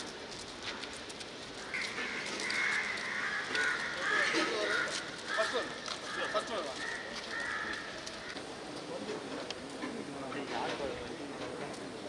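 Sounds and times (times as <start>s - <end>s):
faint scattered clicks: 0.0s - 12.0s
crows cawing: 1.6s - 8.4s.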